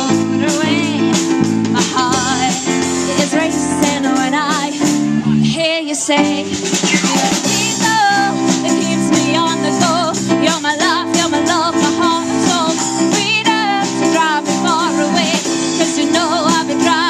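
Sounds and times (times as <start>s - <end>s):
woman singing with vibrato: 0.0s - 1.2s, 1.8s - 17.0s
pop-rock band playing: 0.0s - 17.0s.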